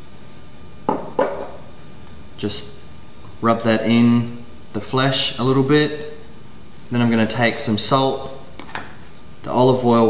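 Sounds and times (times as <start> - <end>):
glass bottle set down on countertop: 0.9 - 1.6.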